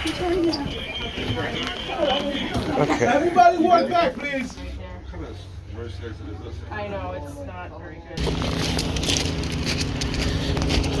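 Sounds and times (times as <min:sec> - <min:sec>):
footsteps crunching on ballast: 0:08.2 - 0:11.0.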